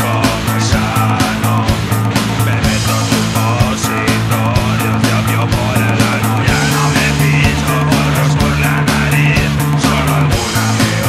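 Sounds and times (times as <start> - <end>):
fast punk rock song: 0.0 - 11.0.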